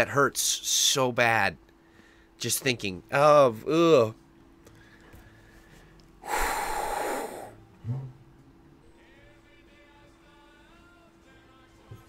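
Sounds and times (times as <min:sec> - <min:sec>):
man hissing breath through mouth: 0:06.2 - 0:07.6
low grunt: 0:06.3 - 0:08.2.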